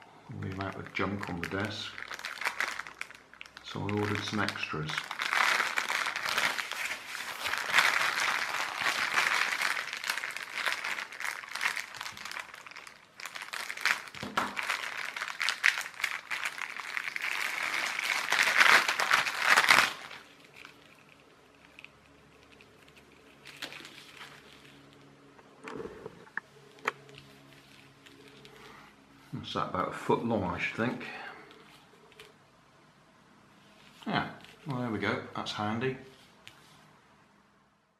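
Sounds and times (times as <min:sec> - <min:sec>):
plastic bag crinkling: 0:00.3 - 0:25.9, 0:26.6 - 0:29.0.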